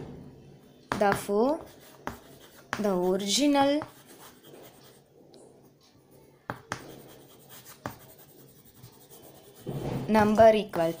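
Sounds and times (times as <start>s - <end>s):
person speaking: 0.9s - 5.0s, 10.1s - 11.0s
chalk tapping and scraping: 0.9s - 5.1s, 5.8s - 11.0s.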